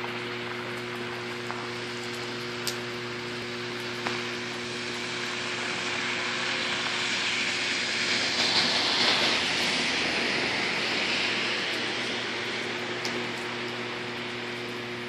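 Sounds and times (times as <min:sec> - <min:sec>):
steady low hum: 0:00.0 - 0:15.0
car tyres hissing on wet road: 0:03.9 - 0:15.0.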